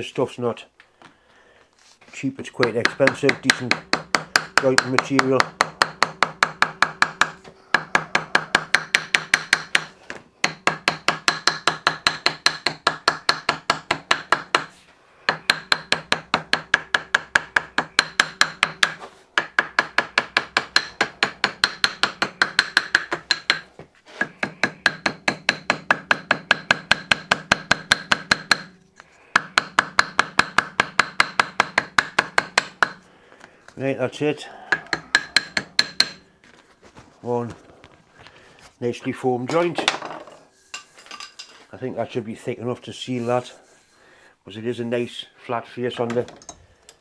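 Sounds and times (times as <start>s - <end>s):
hammer tapping on paper over metal: 2.6s - 14.7s, 15.3s - 23.6s, 24.2s - 33.0s.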